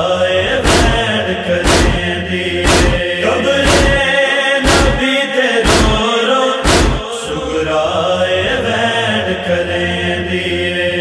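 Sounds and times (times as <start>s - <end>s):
chorus humming low drone: 1.6s - 5.1s.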